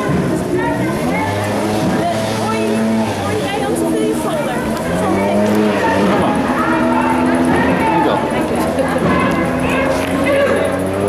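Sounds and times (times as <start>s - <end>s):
crowd calling out: 0.0s - 11.0s.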